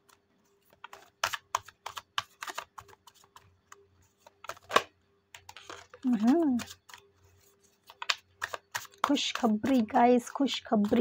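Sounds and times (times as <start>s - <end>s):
cards being shuffled: 0.0s - 11.0s.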